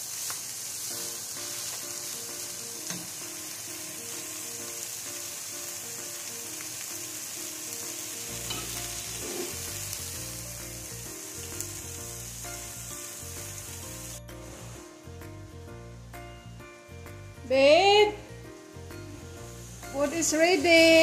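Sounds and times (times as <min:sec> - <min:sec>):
fried rice sizzling in a pot: 0:00.0 - 0:21.0
simple melody with bass line: 0:09.8 - 0:20.3.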